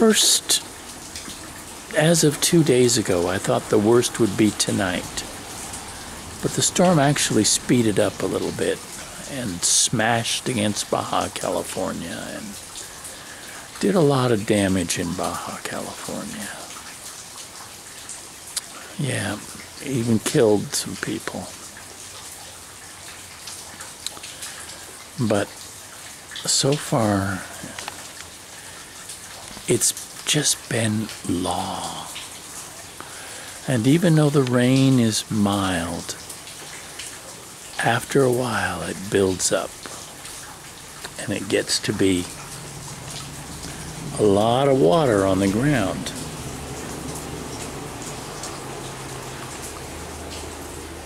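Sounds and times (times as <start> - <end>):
scattered drips: 0.0 - 51.0
steady rain hiss: 0.0 - 51.0
single raindrops: 38.9 - 51.0.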